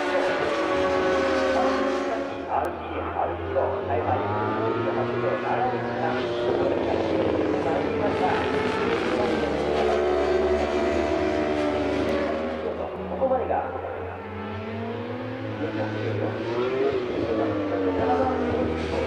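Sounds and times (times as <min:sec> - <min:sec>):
motorcycle racing engine: 0:00.0 - 0:19.0
person's voice: 0:01.5 - 0:10.1, 0:12.1 - 0:14.2, 0:15.6 - 0:19.0.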